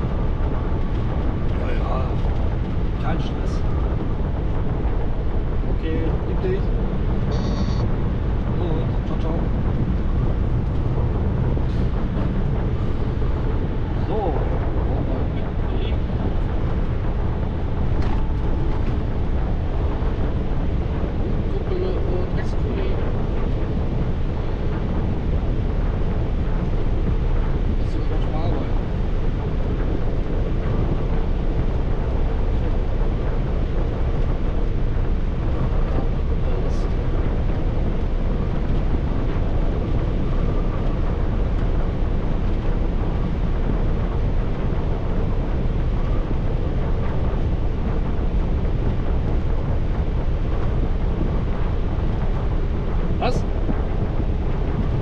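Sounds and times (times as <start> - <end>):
road and wind noise in car: 0.0 - 55.0.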